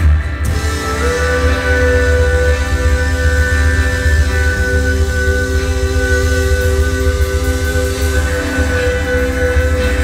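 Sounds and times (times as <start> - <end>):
drums: 0.0 - 10.0
guitars: 0.0 - 10.0
heavy bass: 0.0 - 10.0.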